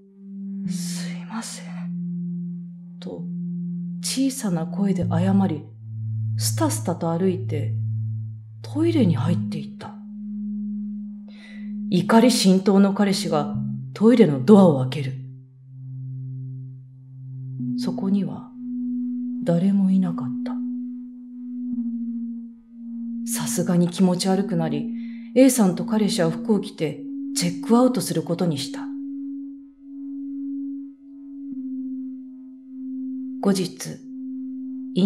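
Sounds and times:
low ambient music drone: 0:00.0 - 0:35.0.

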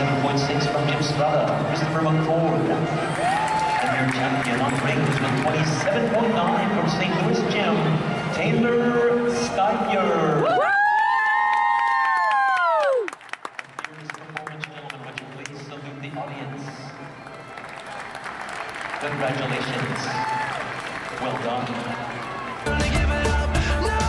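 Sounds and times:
music: 0:00.0 - 0:11.0, 0:15.0 - 0:24.0
audience applauding: 0:03.0 - 0:06.3, 0:10.7 - 0:15.7, 0:17.1 - 0:23.4
person shouting woo: 0:10.4 - 0:13.1, 0:20.1 - 0:20.6.

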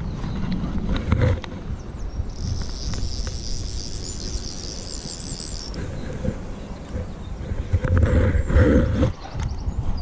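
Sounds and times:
high steady buzz: 0:02.3 - 0:06.6.

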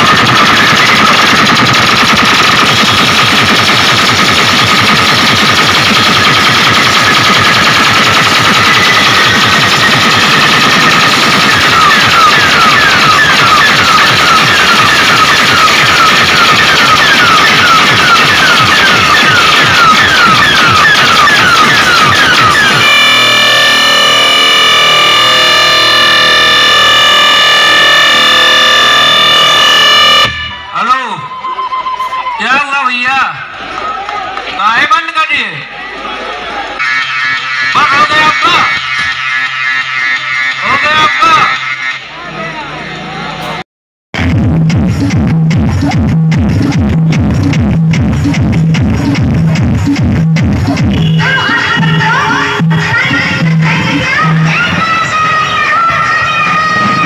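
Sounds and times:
rapid electronic hits: 0:00.0 - 0:30.9, 0:36.8 - 0:41.8, 0:44.2 - 0:55.0
held electronic chord: 0:03.8 - 0:30.7
falling electronic squeal: 0:05.8 - 0:32.3.

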